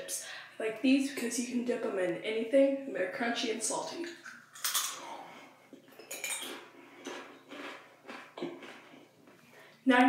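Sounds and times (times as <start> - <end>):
chewing crunchy chips: 6.2 - 9.4.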